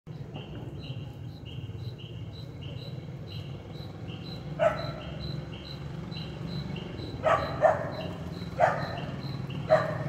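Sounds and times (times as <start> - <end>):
insects chirping: 0.1 - 10.0
dog barking: 4.6 - 5.2, 7.2 - 10.0.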